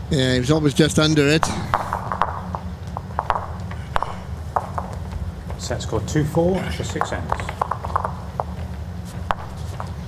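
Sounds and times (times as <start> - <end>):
steady low hum: 0.0 - 10.0
footsteps on carpeted boards: 1.7 - 5.7.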